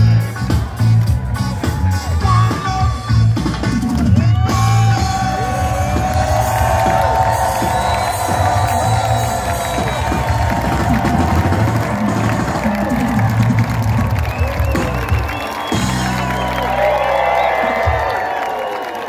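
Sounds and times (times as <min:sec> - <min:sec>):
heavy bass line: 0:00.0 - 0:15.2
live reggae band: 0:00.0 - 0:18.2
crowd cheering and whooping: 0:00.4 - 0:02.8, 0:03.7 - 0:19.0.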